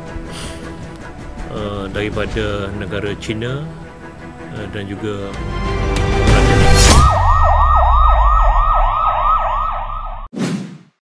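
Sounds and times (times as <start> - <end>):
siren yelping: 6.8 - 10.3.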